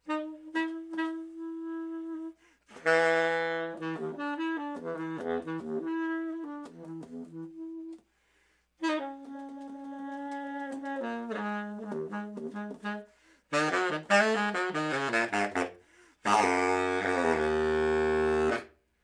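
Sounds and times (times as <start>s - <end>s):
baritone saxophone playing: 0.0s - 8.1s, 8.8s - 18.8s.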